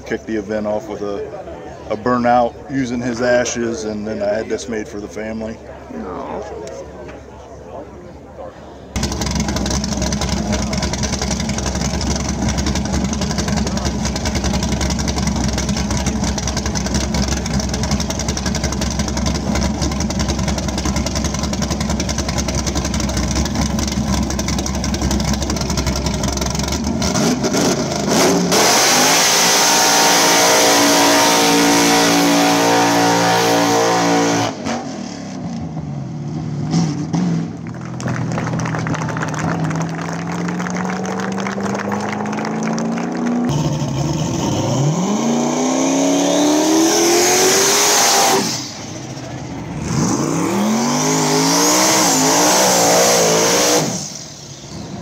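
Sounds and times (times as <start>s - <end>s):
car engine revving: 9.0s - 55.0s.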